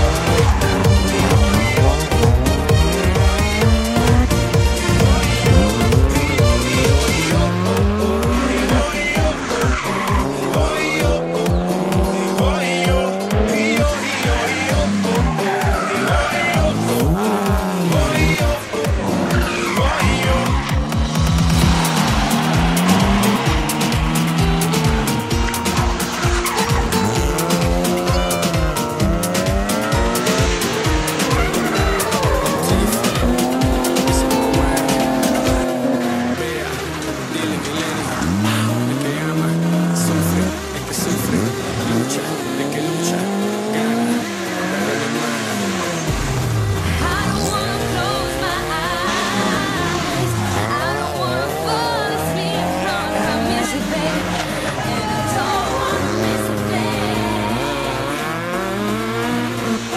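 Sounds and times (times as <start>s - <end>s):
electronic dance music: 0.0s - 59.9s
rally car engines revving: 0.0s - 59.9s
tyres squealing: 0.0s - 59.9s
tyre squeal: 8.7s - 11.1s, 14.5s - 17.1s, 19.1s - 35.7s.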